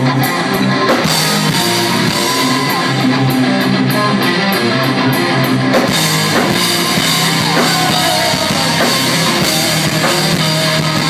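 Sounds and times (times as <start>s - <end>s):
bass guitar: 0.0s - 11.0s
drum kit: 0.0s - 11.0s
electric guitars: 0.0s - 11.0s.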